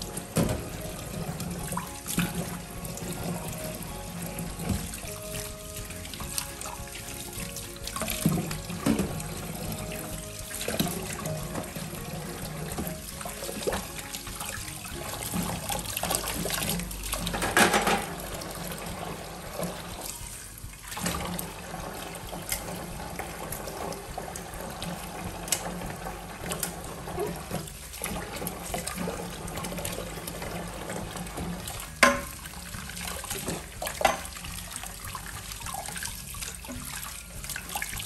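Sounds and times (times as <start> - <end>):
metal pans clinking: 0.0 - 20.4, 21.0 - 32.6, 33.2 - 34.6
tap running into metal sink: 0.1 - 20.3, 20.9 - 38.0.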